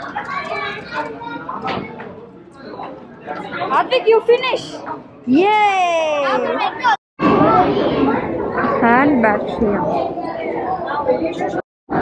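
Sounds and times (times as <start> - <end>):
background chatter in a hall: 0.0 - 12.0
people talking: 2.7 - 11.6.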